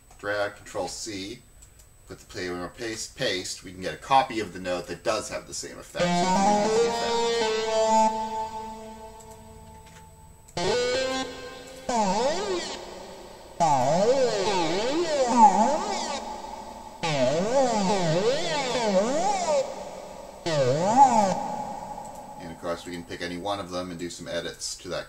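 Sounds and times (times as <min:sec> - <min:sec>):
synthesized notes wobbling in pitch: 0:06.0 - 0:09.9, 0:10.6 - 0:23.1.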